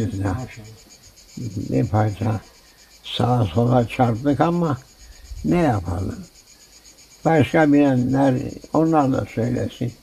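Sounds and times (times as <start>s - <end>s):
man talking: 0.0s - 0.8s, 1.4s - 2.4s, 3.1s - 4.8s, 5.4s - 6.3s, 7.3s - 10.0s
faint high pulsing hum: 0.0s - 10.0s.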